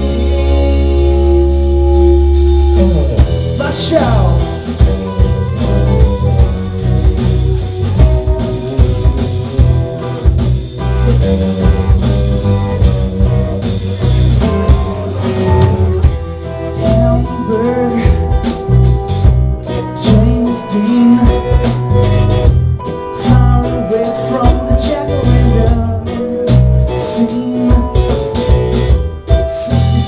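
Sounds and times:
rock band playing: 0.0s - 30.0s.

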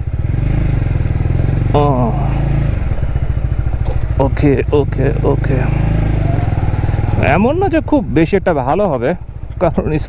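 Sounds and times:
motorcycle engine running: 0.0s - 10.0s
man talking: 1.8s - 2.6s, 4.1s - 6.1s, 7.1s - 10.0s.

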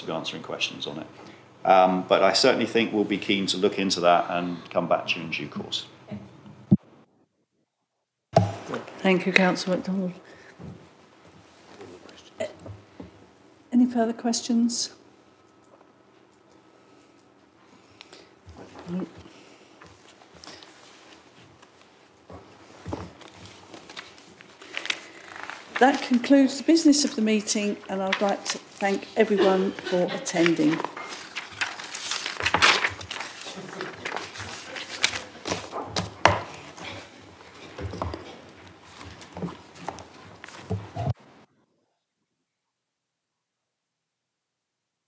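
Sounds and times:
papers rustling: 18.5s - 41.2s.

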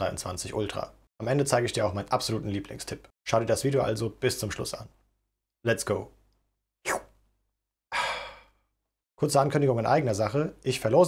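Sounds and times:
man sighing: 7.9s - 8.6s.

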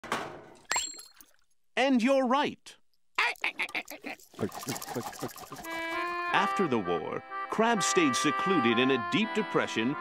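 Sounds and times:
clattering thunk: 0.0s - 0.6s
person speaking: 1.8s - 7.2s.

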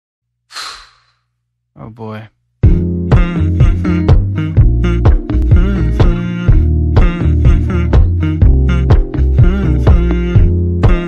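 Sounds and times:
pitch-raised vocal sigh: 0.5s - 1.2s.

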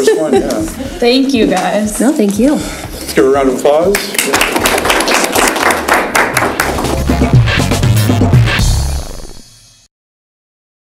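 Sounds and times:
audience applauding: 3.8s - 7.7s.

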